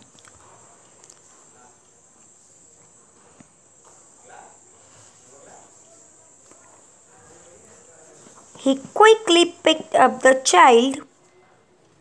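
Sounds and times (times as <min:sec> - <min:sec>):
faint indistinct sounds: 0:00.0 - 0:12.0.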